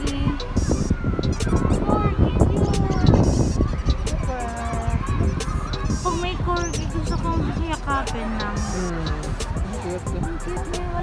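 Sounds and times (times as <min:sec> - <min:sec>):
crowd clatter and hubbub: 0:00.0 - 0:11.0.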